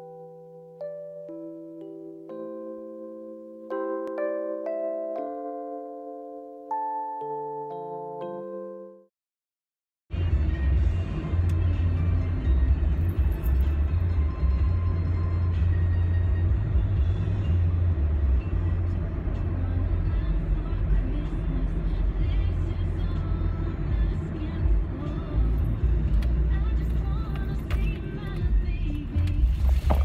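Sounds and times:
car cabin road and engine rumble: 10.1s - 30.0s.

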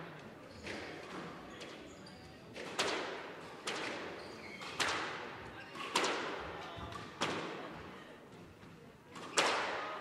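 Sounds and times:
squash ball striking rackets and walls: 2.6s - 5.2s, 5.8s - 6.4s.

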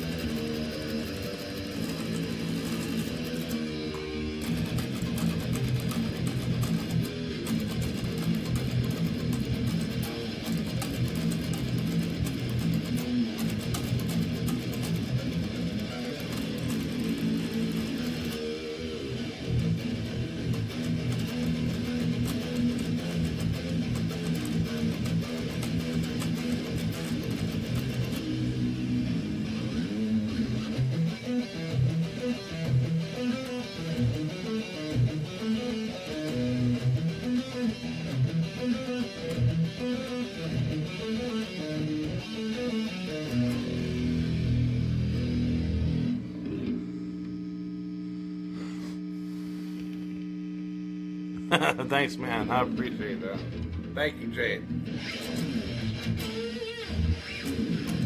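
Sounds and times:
electric guitar heavy metal riff: 0.0s - 49.1s, 51.4s - 58.0s
steady electrical hum: 43.6s - 56.2s.

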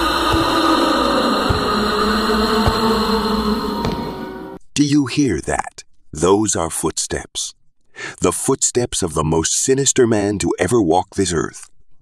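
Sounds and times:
low droning music: 0.0s - 4.6s
slow footsteps thudding: 0.0s - 4.6s.

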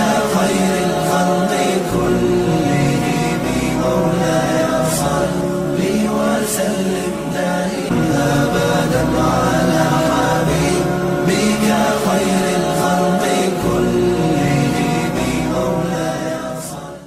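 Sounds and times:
chanted devotional singing: 0.0s - 17.0s.

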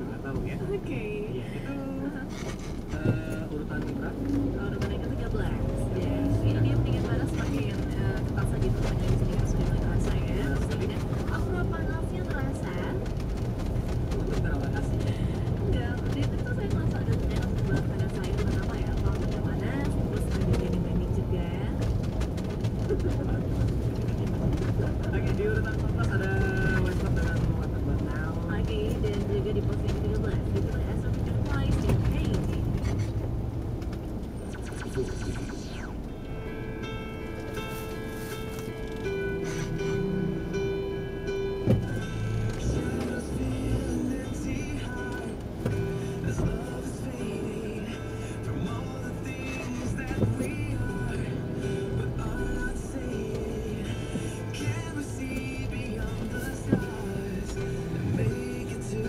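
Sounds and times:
car radio talk and music: 0.0s - 59.0s
engine and road rumble: 0.0s - 59.0s.

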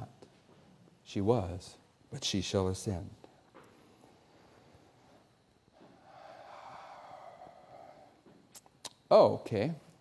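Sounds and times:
person breathing out: 5.8s - 8.4s.

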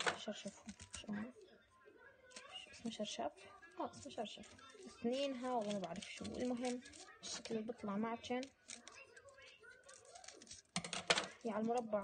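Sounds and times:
scissors snipping paper: 0.0s - 1.2s, 4.0s - 7.6s, 8.3s - 12.0s.

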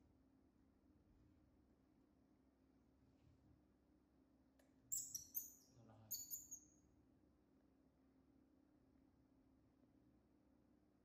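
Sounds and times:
baby monkey squeaky chirps: 4.9s - 6.7s.

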